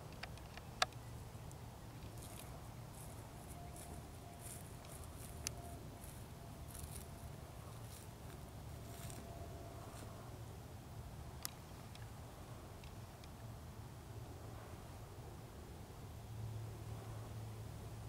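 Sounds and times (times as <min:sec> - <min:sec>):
sharp clicks: 0:00.0 - 0:02.2
low steady rumble: 0:00.0 - 0:18.0
faint thin steady tone: 0:01.0 - 0:13.5.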